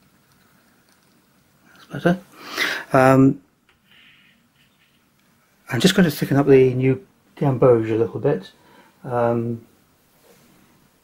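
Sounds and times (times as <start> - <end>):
voice: 1.8 - 3.4, 5.7 - 9.7.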